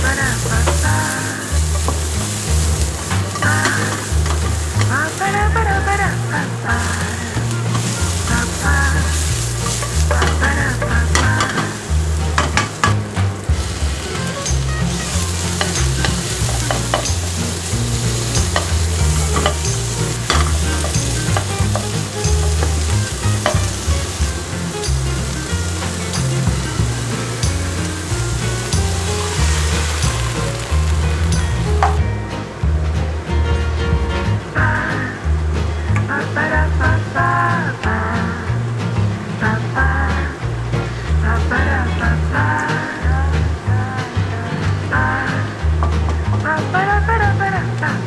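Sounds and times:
vegetables and meat sizzling in a pan: 0.0 - 32.9, 33.5 - 48.0
wooden spatula scraping a pan: 0.1 - 5.3, 6.8 - 31.2.

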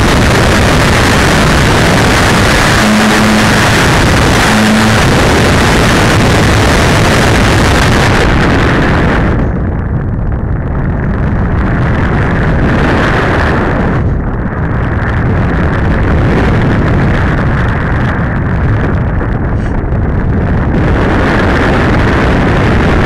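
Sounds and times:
wind rushing over microphone: 0.0 - 23.0.

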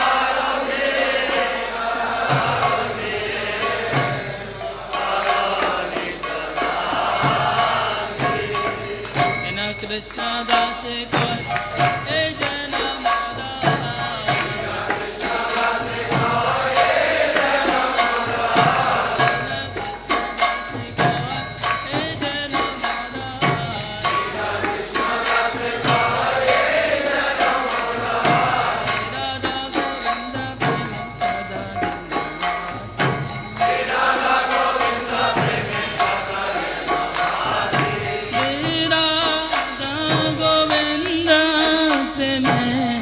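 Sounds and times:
voices chanting: 0.0 - 23.0, 23.7 - 30.6, 31.4 - 40.2
hand drum beat: 0.0 - 43.0
ringing metal percussion: 0.0 - 43.0.

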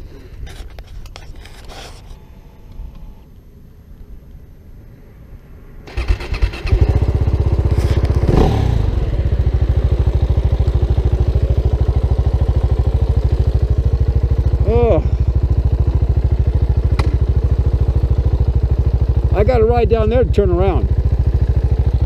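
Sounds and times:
motorcycle engine starting and idling: 5.8 - 22.0.

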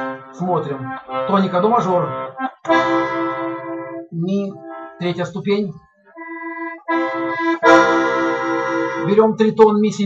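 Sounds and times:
button accordion chord: 0.0 - 5.3, 6.0 - 9.4.

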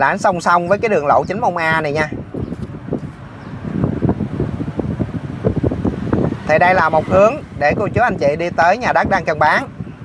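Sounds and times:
road and engine rumble: 0.0 - 10.0
wind buffeting microphone: 0.0 - 10.0.

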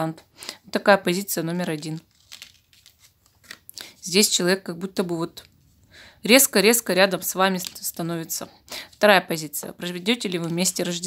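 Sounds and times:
cards rustling and clicking: 1.6 - 4.0, 7.2 - 9.0, 9.9 - 11.0.

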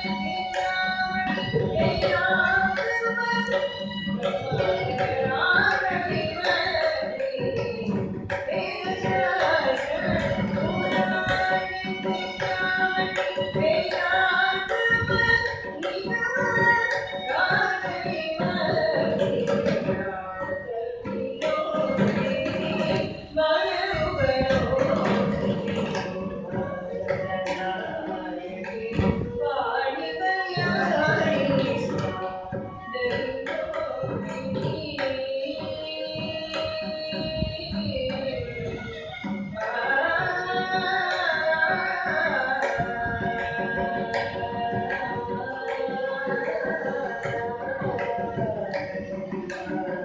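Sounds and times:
mridangam drum strokes: 0.0 - 50.0
violin melody: 0.0 - 50.0
woman singing: 0.0 - 50.0.

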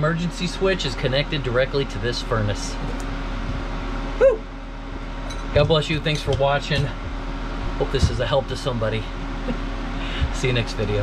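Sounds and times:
steady low hum: 0.0 - 11.0
man cheering: 4.2 - 4.5.

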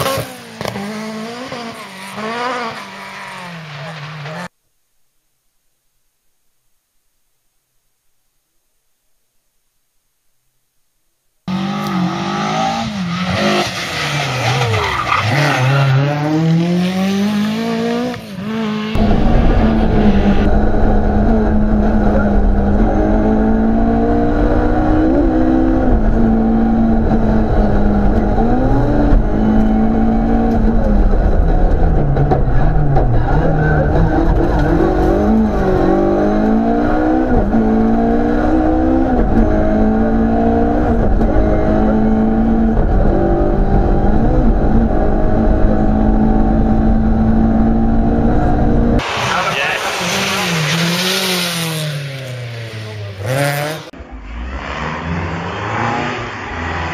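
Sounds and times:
rally car engine revving: 0.0 - 4.5, 11.5 - 56.9.

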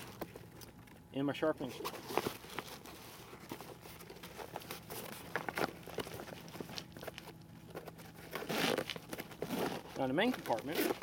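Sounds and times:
backpack fabric rustling: 1.6 - 11.0.

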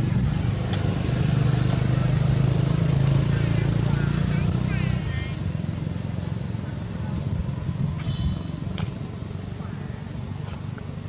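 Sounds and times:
motor vehicle rumbling: 0.0 - 11.0.

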